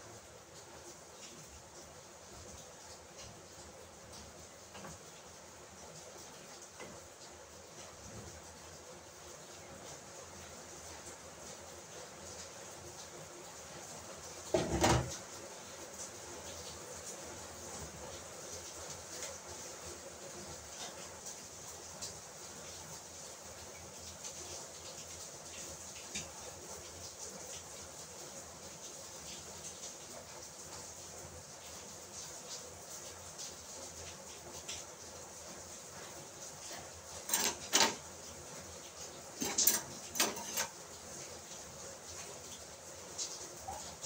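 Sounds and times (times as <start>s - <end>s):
cookware clattering: 14.6s - 15.1s, 37.3s - 38.0s, 39.4s - 40.8s
pots and glass lids clinking: 14.6s - 15.1s, 37.3s - 38.0s, 39.4s - 40.8s.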